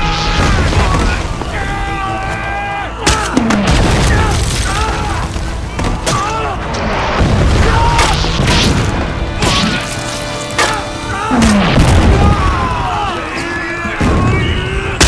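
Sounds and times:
men yelling and screaming: 0.0s - 8.4s, 10.6s - 15.0s.

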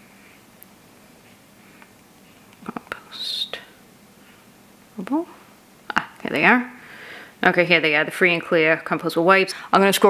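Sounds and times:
woman whispering: 2.6s - 3.8s.

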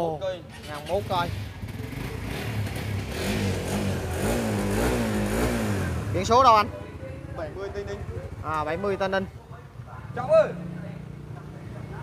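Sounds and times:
motorcycle engine revving: 0.4s - 12.0s.

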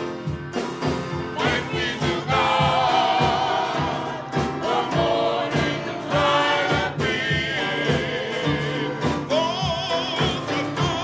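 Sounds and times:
accompaniment with steady beat: 0.0s - 11.0s
gospel choir singing in harmony: 0.0s - 11.0s.

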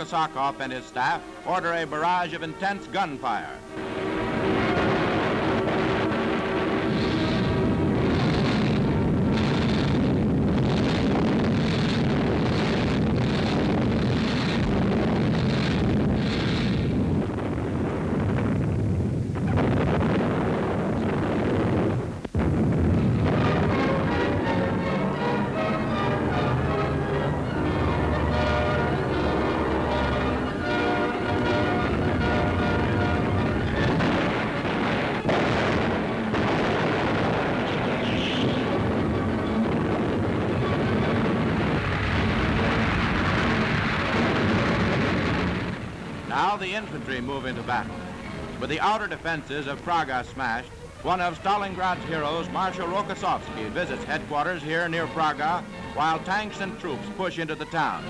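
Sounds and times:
music: 0.0s - 18.2s, 19.2s - 58.0s
artillery gunfire and shell bursts: 4.3s - 17.2s, 19.4s - 57.1s.

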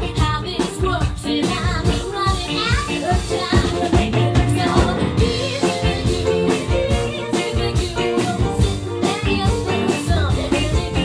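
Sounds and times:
drums: 0.0s - 11.0s
guitar: 0.0s - 11.0s
piano: 0.0s - 11.0s
upright bass: 0.0s - 11.0s
woman singing lead vocal: 0.0s - 11.0s.

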